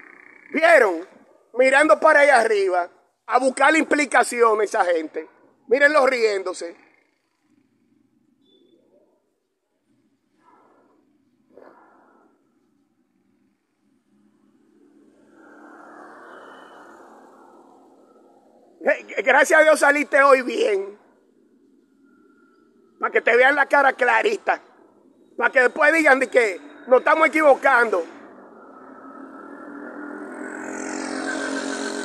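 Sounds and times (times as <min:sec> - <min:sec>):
car passing: 0:09.9 - 0:32.0
vehicle engine hum: 0:25.0 - 0:32.0.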